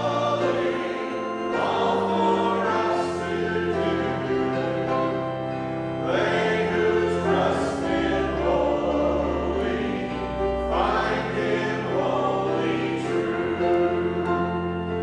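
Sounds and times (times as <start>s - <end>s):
man and woman singing a hymn: 0.0s - 15.0s
sustained instrumental accompaniment: 0.0s - 15.0s.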